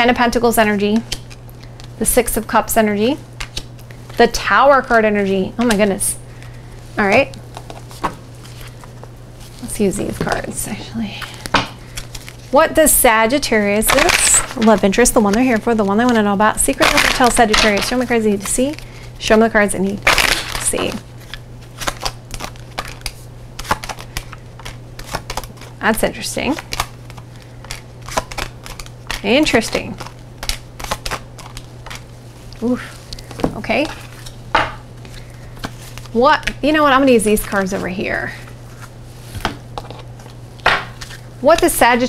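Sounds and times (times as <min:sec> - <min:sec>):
steady low hum: 0:00.0 - 0:42.0
cards being shuffled: 0:00.8 - 0:02.1, 0:03.2 - 0:04.3, 0:04.9 - 0:12.6, 0:13.5 - 0:19.1, 0:20.0 - 0:42.0.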